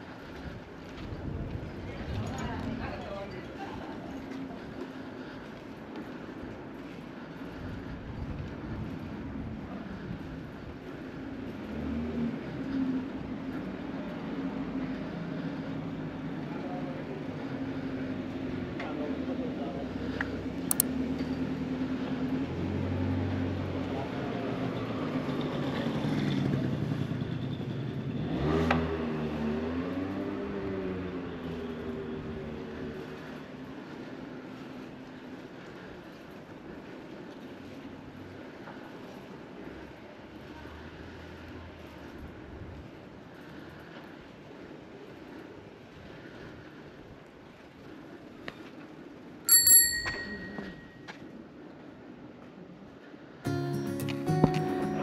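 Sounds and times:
motor scooter passing by: 0:11.1 - 0:18.7, 0:21.4 - 0:35.1
sharp click: 0:20.7 - 0:20.9
bicycle bell ringing: 0:49.5 - 0:51.1.

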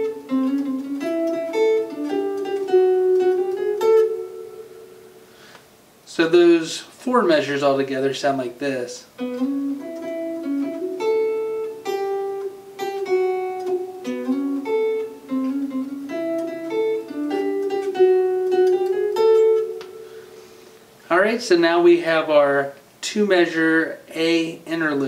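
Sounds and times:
electric guitar lead with slides: 0:00.0 - 0:05.5, 0:09.2 - 0:20.9.

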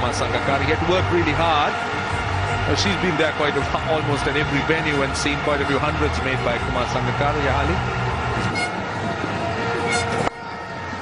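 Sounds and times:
stadium crowd noise: 0:00.0 - 0:11.0
horn blowing held note: 0:08.4 - 0:08.8.

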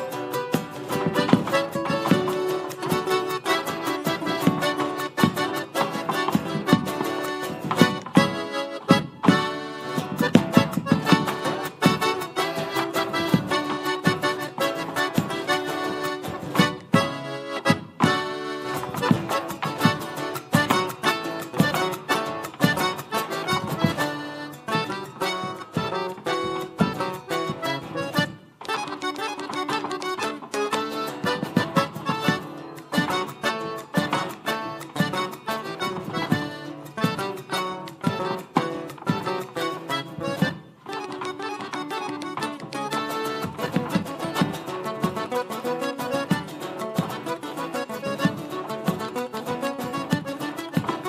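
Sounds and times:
boots stamping on stage floor: 0:00.0 - 0:51.0
folk music with held notes: 0:00.0 - 0:51.0.

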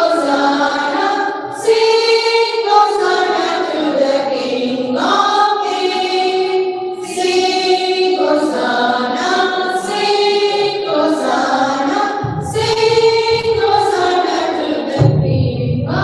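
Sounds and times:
women's choir singing: 0:00.0 - 0:16.0.

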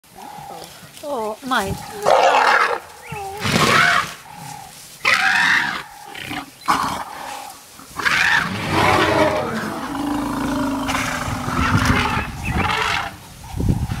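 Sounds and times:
elephants trumpeting and roaring: 0:01.7 - 0:14.0.

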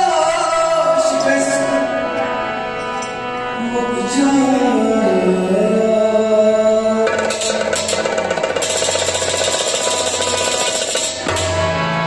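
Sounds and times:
man singing: 0:00.0 - 0:02.3, 0:03.4 - 0:07.7
harmonium chord: 0:00.0 - 0:07.0, 0:07.6 - 0:12.0.

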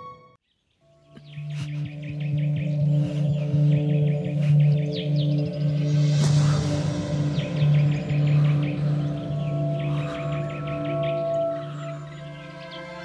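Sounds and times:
ambient droning music: 0:00.0 - 0:13.0
birds chirping: 0:00.4 - 0:13.0.

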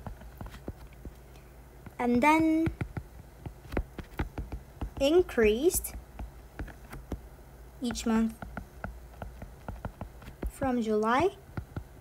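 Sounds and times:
stylus tapping on tablet screen: 0:00.0 - 0:01.2, 0:01.8 - 0:10.7, 0:11.5 - 0:12.0.

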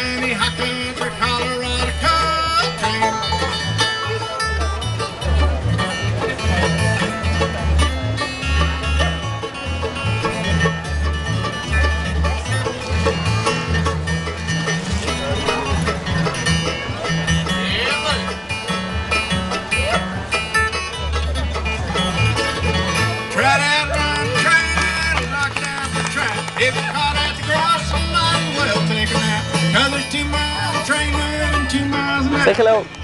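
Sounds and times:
banjo picking: 0:00.0 - 0:33.0
strummed acoustic guitar: 0:00.0 - 0:33.0
upright bass walking: 0:00.0 - 0:33.0.

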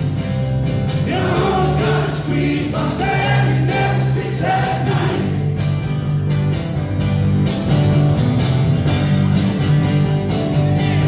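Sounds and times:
strummed acoustic guitars: 0:00.0 - 0:11.0
male lead vocal: 0:01.0 - 0:05.5.

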